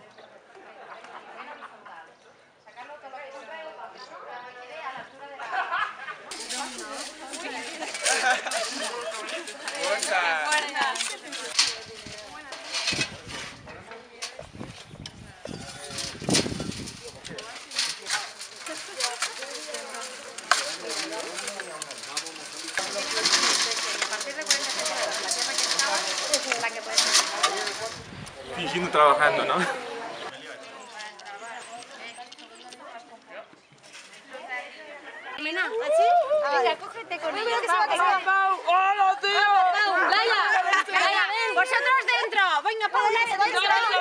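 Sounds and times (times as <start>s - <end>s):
people chattering: 0.0s - 33.6s, 34.2s - 44.0s
earth shovelled through metal sieve: 6.3s - 29.4s
tools clattering and scraping: 6.3s - 29.4s.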